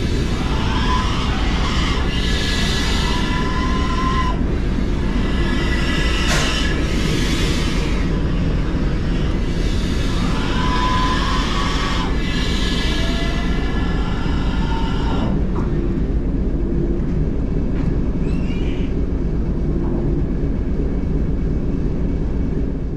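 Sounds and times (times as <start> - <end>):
locomotive rumbling on rails: 0.0 - 22.9
metallic squeals: 18.2 - 19.0.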